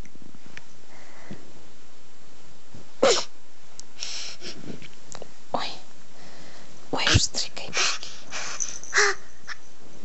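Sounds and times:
baby making raspy breathy sounds: 7.7s - 9.6s
baby squawking: 8.9s - 9.6s.

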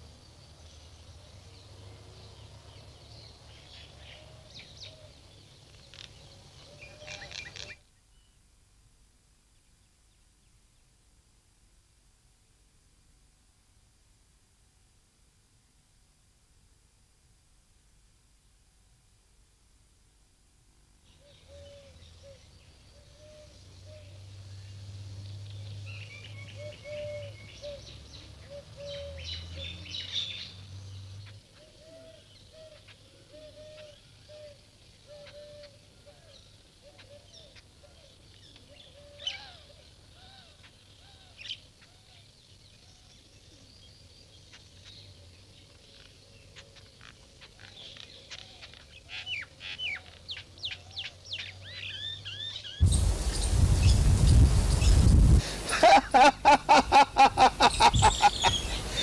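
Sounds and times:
birds chirping: 0.0s - 8.3s, 21.1s - 59.0s
loud rush of noise: 52.8s - 56.4s.

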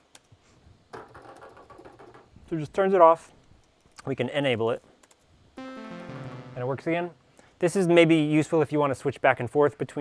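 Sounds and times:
person speaking: 5.6s - 7.3s.

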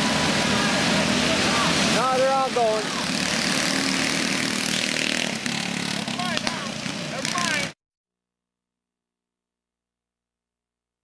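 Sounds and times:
go-kart engines racing: 0.0s - 7.8s.

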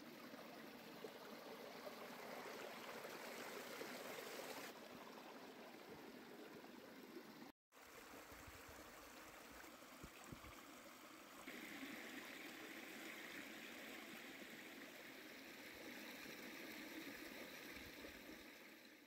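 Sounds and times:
flowing stream: 0.0s - 19.0s.

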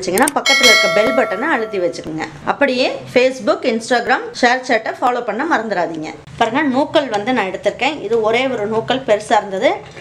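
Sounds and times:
person speaking: 0.2s - 2.1s
bright bell chime: 0.5s - 2.0s.

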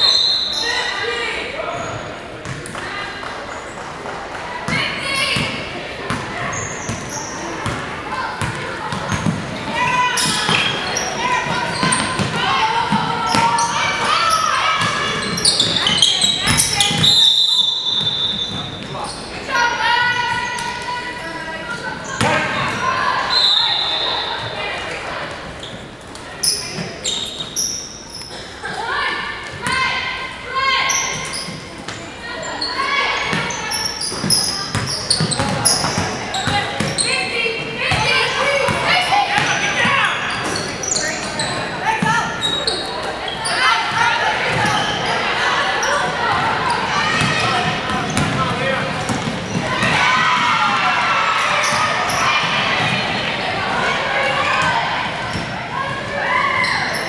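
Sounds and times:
indistinct voices: 0.0s - 57.0s.

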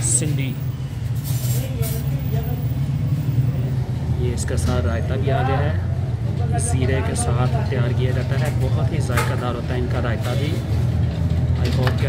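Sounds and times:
faint indistinct voices: 0.0s - 3.8s.

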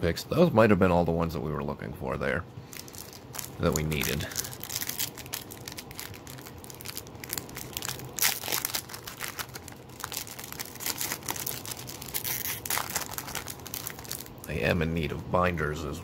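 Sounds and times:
foil wrapper crinkling and tearing: 2.7s - 14.4s.

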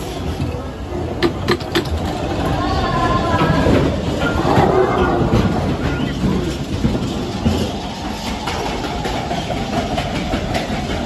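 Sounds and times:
roller coaster wheels rumbling on rails: 0.0s - 11.0s.

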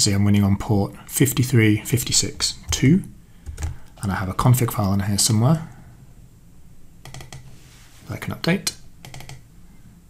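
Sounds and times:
keyboard keystrokes: 3.5s - 3.8s, 7.0s - 7.4s, 9.0s - 9.4s.

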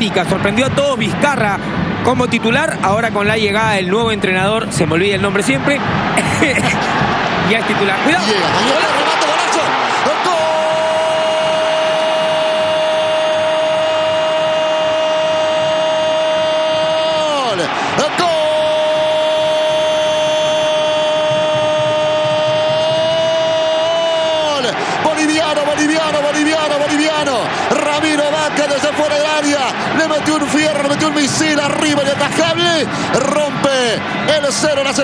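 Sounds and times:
quick breath: 24.8s - 25.0s, 32.9s - 33.1s.

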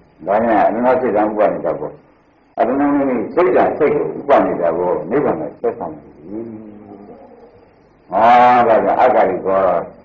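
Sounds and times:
man giving a sermon: 0.2s - 7.1s, 8.1s - 10.0s.

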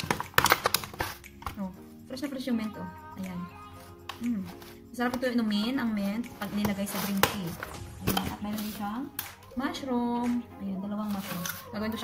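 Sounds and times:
plastic container lid snapping: 0.0s - 1.6s.

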